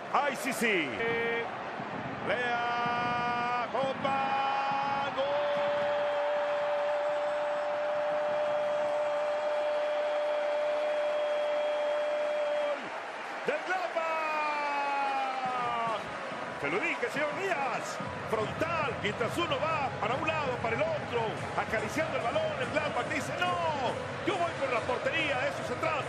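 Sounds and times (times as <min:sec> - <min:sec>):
crowd noise: 0:00.0 - 0:26.0.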